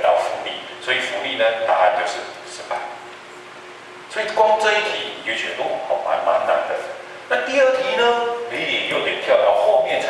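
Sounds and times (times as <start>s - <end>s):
man lecturing: 0.0s - 3.0s, 4.1s - 10.0s.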